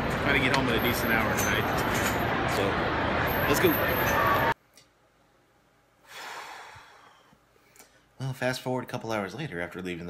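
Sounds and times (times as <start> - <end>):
ballpark crowd noise: 0.0 - 4.6.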